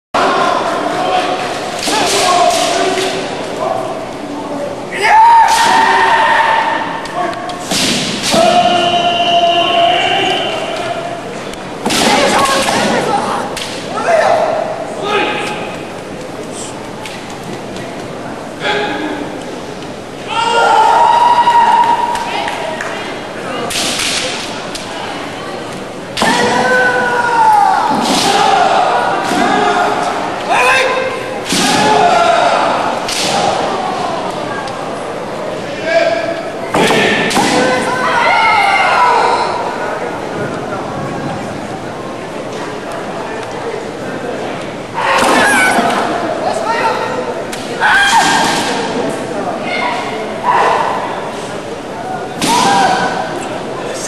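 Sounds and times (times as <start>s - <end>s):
fencers shouting: 4.8s - 15.9s, 20.2s - 22.5s, 26.2s - 34.4s, 45.0s - 49.0s
bamboo swords striking: 7.6s - 8.7s
long high shout: 20.3s - 22.2s.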